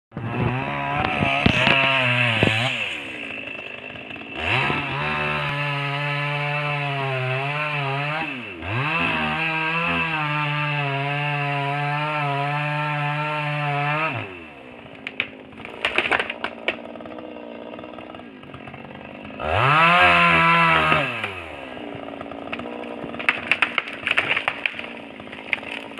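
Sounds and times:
chainsaw cutting wood: 0:00.1 - 0:25.9
sharp cracks: 0:01.0 - 0:05.6, 0:15.0 - 0:17.0, 0:20.4 - 0:25.9.

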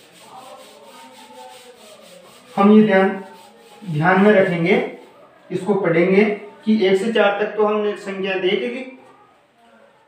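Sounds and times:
hand rubbing whiteboard: 0:00.0 - 0:05.2.

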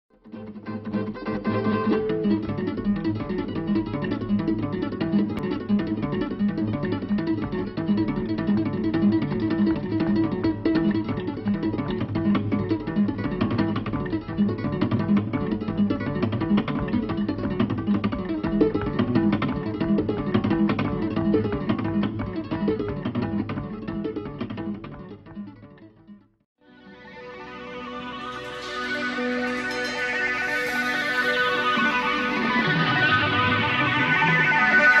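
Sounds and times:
tapped acoustic guitar notes: 0:00.7 - 0:26.1.

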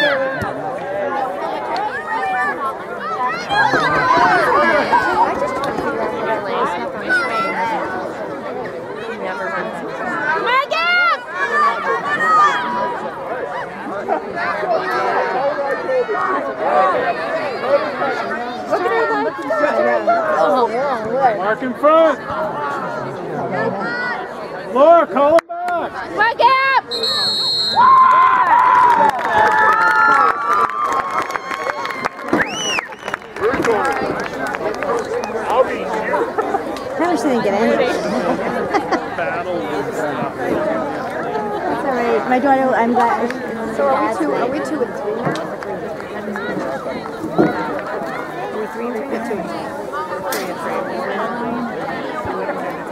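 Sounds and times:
overlapping crowd chatter: 0:00.0 - 0:52.9.

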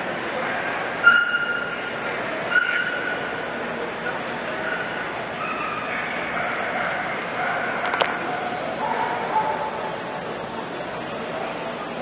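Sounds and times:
background murmur: 0:00.0 - 0:12.0
dog high-pitched calls: 0:02.5 - 0:03.2, 0:04.6 - 0:09.7.

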